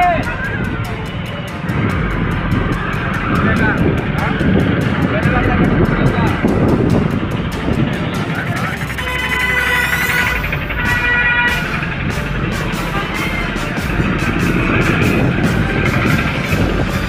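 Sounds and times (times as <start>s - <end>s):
motorcycle engines: 0.0s - 17.0s
music over loudspeakers: 0.0s - 17.0s
people's voices: 0.0s - 17.0s.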